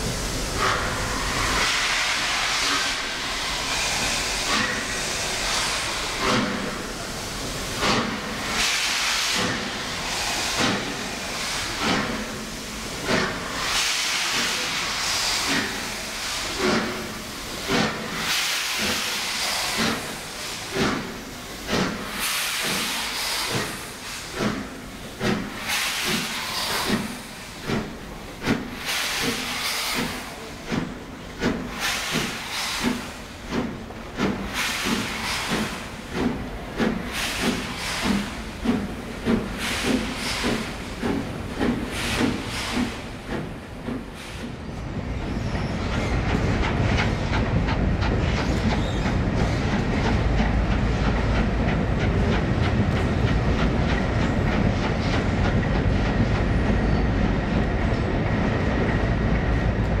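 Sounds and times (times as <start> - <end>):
steam hissing: 0.0 - 60.0
steam locomotive exhaust beats: 0.0 - 60.0.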